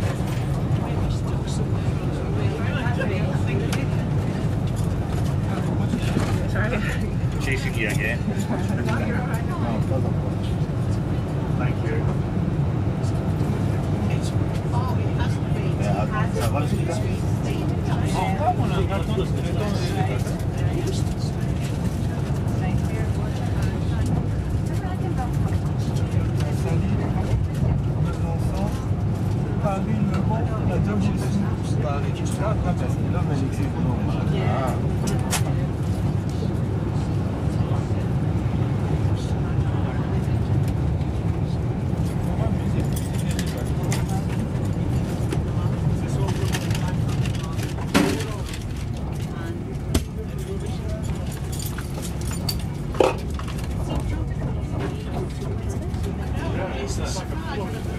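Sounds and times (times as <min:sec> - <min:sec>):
train wheels rumbling on track: 0:00.0 - 0:57.9.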